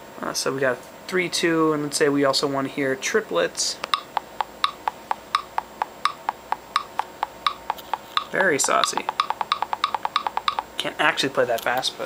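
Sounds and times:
metronome clicking in triplets: 3.8 - 10.7.

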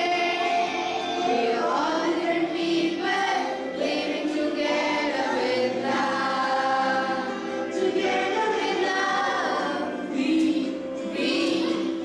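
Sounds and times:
children and adults singing: 0.0 - 12.0.

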